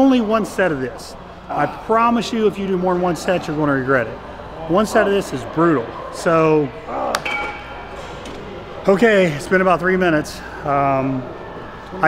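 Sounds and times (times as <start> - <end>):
gym room noise: 0.0 - 12.0.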